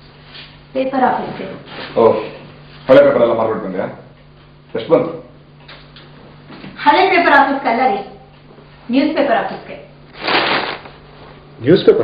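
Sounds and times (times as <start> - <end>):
newspaper rustling: 10.1 - 11.2.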